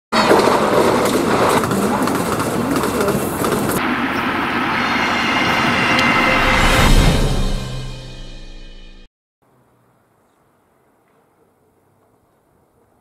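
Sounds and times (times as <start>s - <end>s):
train running on rails: 0.2s - 8.4s.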